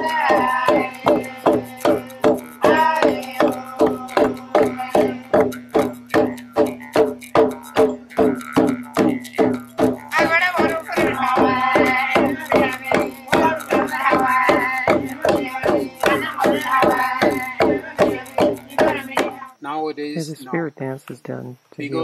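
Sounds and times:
men chanting: 0:00.0 - 0:06.0, 0:10.1 - 0:19.5
held vocal drone: 0:00.0 - 0:06.3, 0:10.1 - 0:19.4
hand drums beating: 0:00.0 - 0:19.6.

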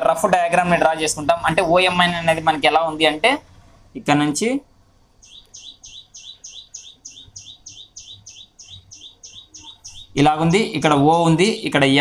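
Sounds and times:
small bird chirping: 0:05.1 - 0:10.8.

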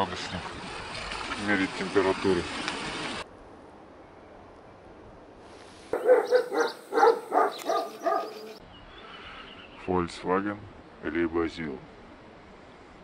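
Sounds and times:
dog barking: 0:06.0 - 0:08.6.

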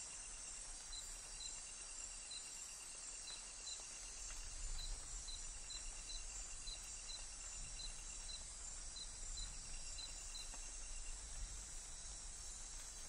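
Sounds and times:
high insect chorus: 0:00.0 - 0:13.0
insect chirping: 0:00.0 - 0:13.0.

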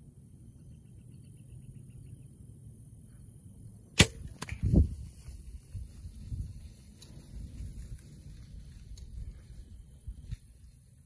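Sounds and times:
arrow striking click: 0:04.0 - 0:04.6.

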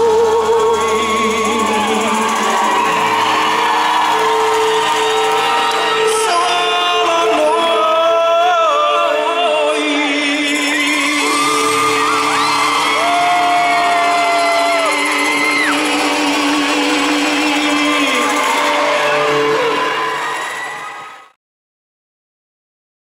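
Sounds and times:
live pop band music: 0:00.0 - 0:21.3.

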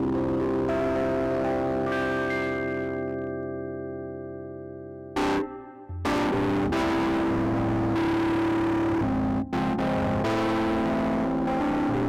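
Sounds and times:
electronic keyboard chords: 0:00.0 - 0:12.0.

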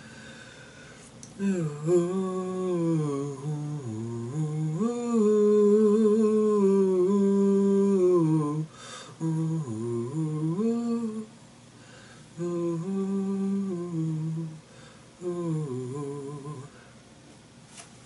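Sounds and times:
man humming a melody: 0:01.3 - 0:11.4, 0:12.4 - 0:16.8.

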